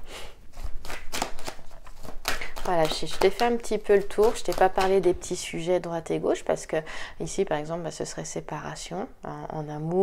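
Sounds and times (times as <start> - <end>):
cards being shuffled: 0.5 - 5.3
crisp card snaps: 0.6 - 3.6.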